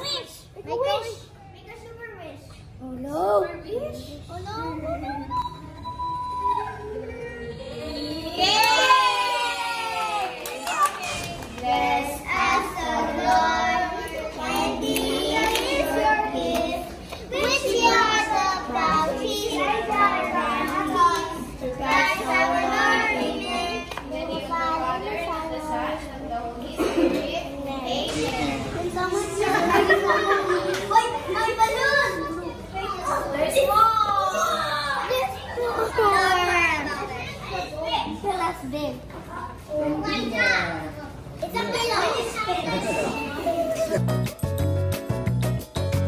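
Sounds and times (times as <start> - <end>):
children talking and calling out: 0.0 - 44.4
children singing together: 11.0 - 32.0.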